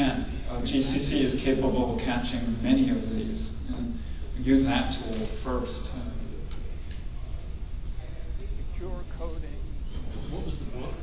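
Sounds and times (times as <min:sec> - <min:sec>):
room noise: 0:00.0 - 0:11.0
steady low hum: 0:00.0 - 0:11.0.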